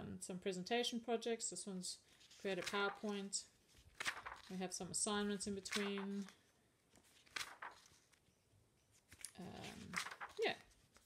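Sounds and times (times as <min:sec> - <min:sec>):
pages being turned: 0:02.1 - 0:11.0.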